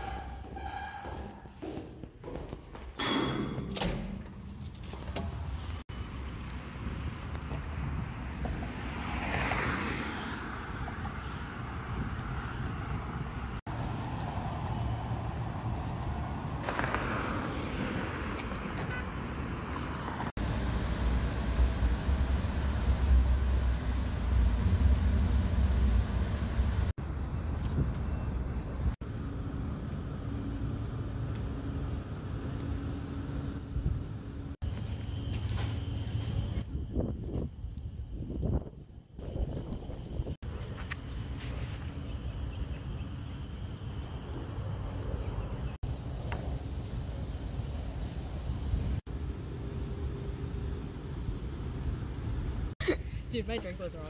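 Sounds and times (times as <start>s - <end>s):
vehicles passing: 4.1s - 54.0s.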